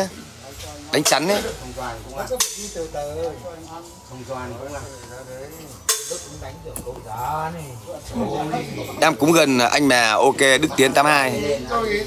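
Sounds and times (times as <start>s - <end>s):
man talking: 0.0s - 12.0s
sharp snap: 2.3s - 2.8s, 5.9s - 6.4s.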